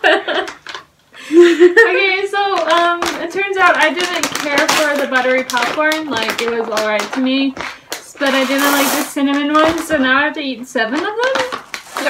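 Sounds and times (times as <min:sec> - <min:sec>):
woman talking: 0:01.8 - 0:12.0.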